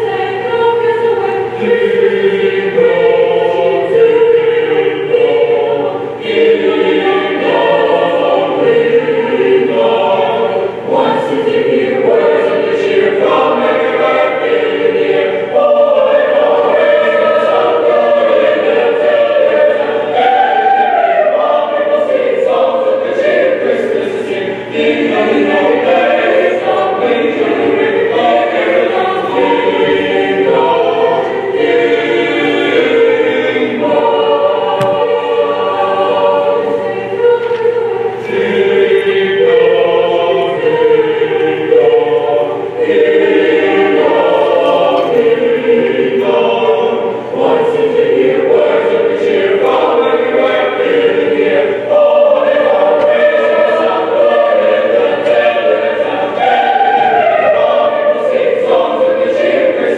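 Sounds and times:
choir singing in parts: 0.0s - 59.9s.

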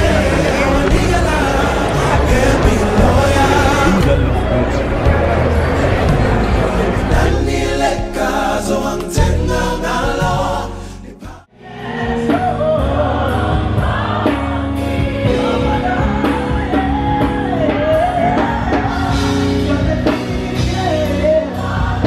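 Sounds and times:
choir singing gospel song: 0.0s - 22.0s
music: 0.0s - 22.0s.

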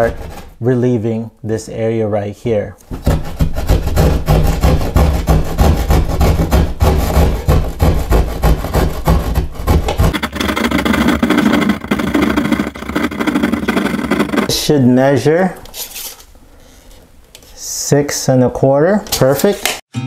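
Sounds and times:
hand saw cutting drywall: 3.0s - 14.5s.

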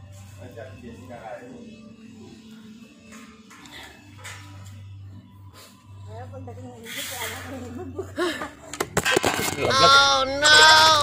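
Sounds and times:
man talking: 9.6s - 11.0s.

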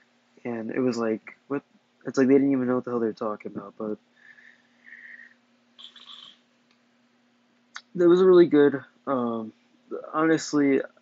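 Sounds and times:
faint steady hum: 0.0s - 11.0s
faint breathing through nose: 4.1s - 6.3s
man sniffing: 4.3s - 5.3s.

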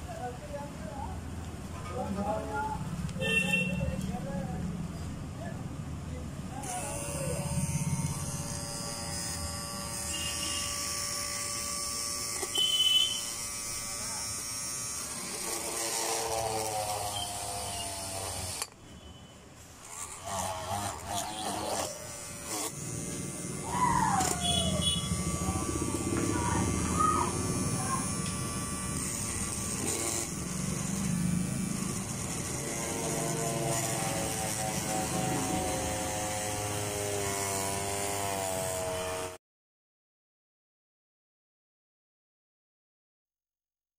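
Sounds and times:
mini drill motor whine: 6.6s - 18.8s, 19.7s - 39.4s.

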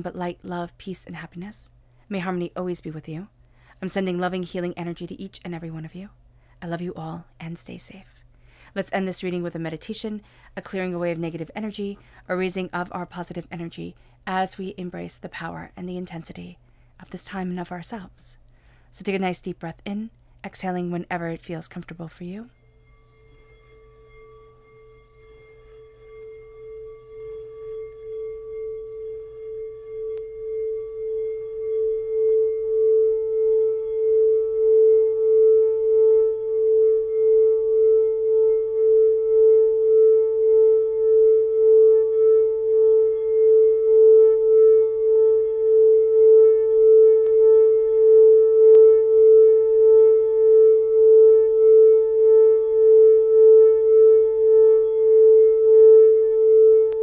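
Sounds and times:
singing bowl humming: 22.4s - 57.0s.

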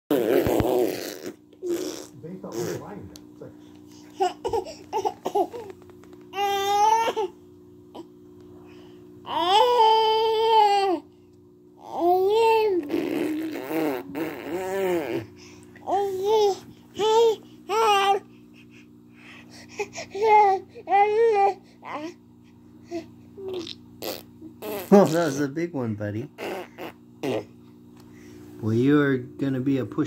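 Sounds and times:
baby vocalizing: 0.1s - 2.9s, 3.9s - 5.7s, 11.8s - 18.2s, 22.9s - 25.4s, 26.4s - 27.6s
baby crying: 4.2s - 5.7s, 6.3s - 7.4s, 9.3s - 11.1s, 11.8s - 18.2s, 19.8s - 22.2s.

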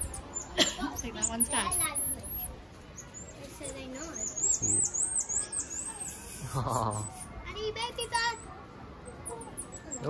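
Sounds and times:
small animal chirping: 0.0s - 7.3s, 9.1s - 10.0s.

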